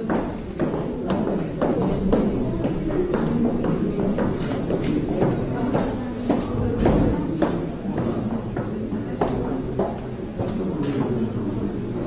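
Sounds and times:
scattered knocks and clicks: 0:00.0 - 0:11.2.

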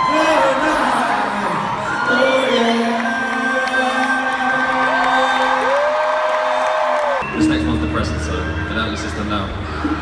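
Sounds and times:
concert crowd cheering: 0:00.0 - 0:10.0.

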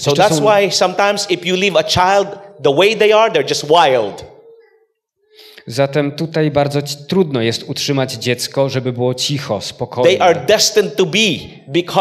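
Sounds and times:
man's voice: 0:00.0 - 0:04.3, 0:05.6 - 0:12.0.

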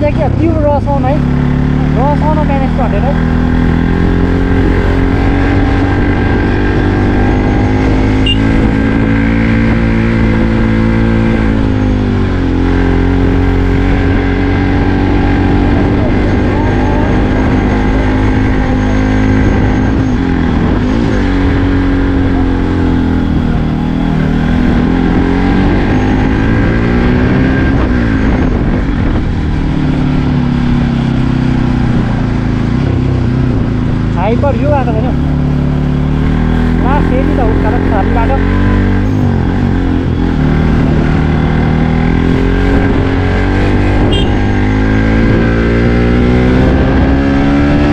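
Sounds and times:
motorcycle engine revving: 0:00.0 - 0:47.9.

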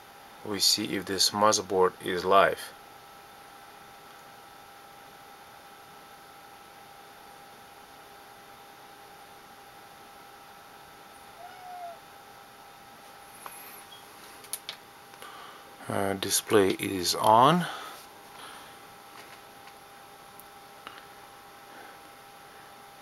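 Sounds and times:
thin steady whine: 0:00.0 - 0:23.0.

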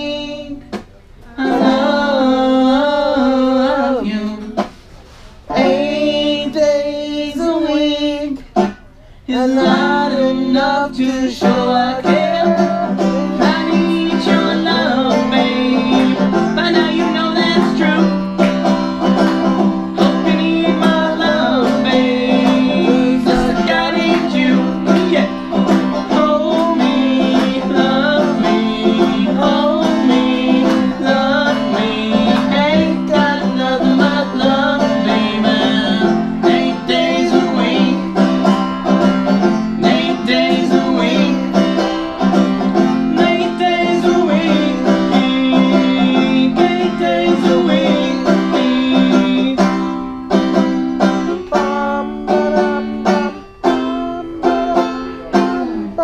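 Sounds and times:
man singing: 0:00.0 - 0:00.7, 0:01.3 - 0:04.7, 0:05.5 - 0:08.5, 0:09.2 - 0:19.1, 0:19.9 - 0:41.9, 0:42.8 - 0:50.0, 0:51.3 - 0:56.0
banjo picking: 0:00.0 - 0:56.0.

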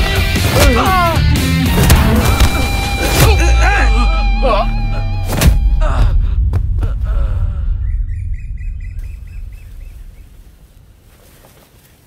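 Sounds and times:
deep low rumble: 0:05.6 - 0:11.2
short bird-like chirps: 0:07.8 - 0:10.3.

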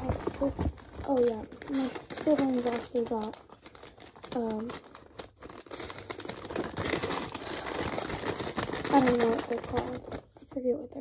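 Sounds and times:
paper bag crinkling: 0:00.0 - 0:10.6.

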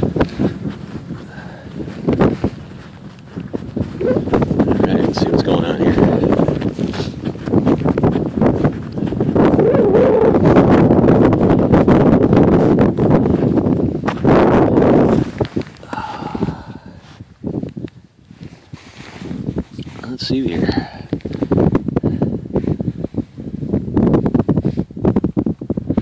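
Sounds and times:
handling noises: 0:00.0 - 0:09.2
footsteps crunching through snow: 0:00.0 - 0:09.6, 0:12.8 - 0:17.6, 0:18.3 - 0:20.4.

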